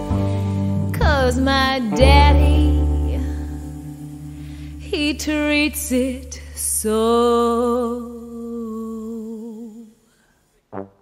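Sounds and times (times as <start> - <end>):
low sustained bass note: 0.0 - 8.0
woman singing a long note: 1.0 - 4.1, 4.8 - 9.9.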